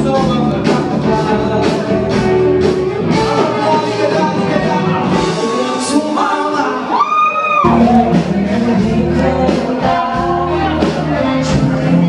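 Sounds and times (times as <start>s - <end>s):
live band playing: 0.0s - 12.0s
man singing: 0.0s - 12.0s.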